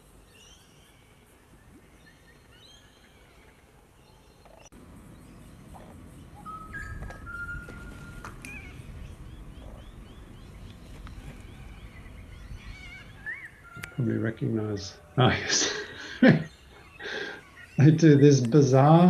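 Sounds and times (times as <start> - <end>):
birds calling: 0.0 - 19.0
low outdoor rumble: 4.7 - 15.6
long whistled bird note: 6.4 - 9.8.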